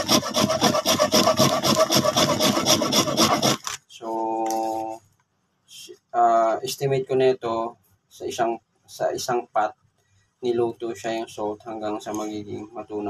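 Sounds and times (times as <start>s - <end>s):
person speaking: 2.9s - 5.0s, 10.5s - 13.0s.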